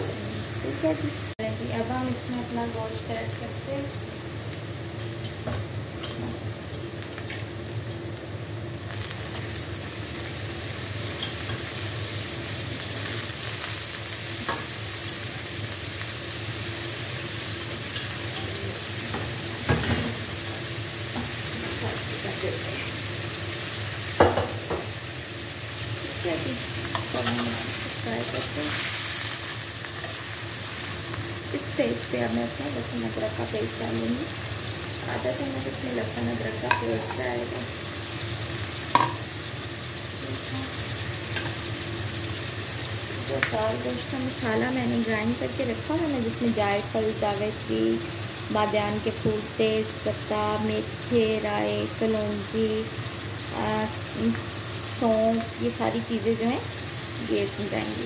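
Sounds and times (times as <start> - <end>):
meat and onions sizzling in oil: 0.0 - 58.0.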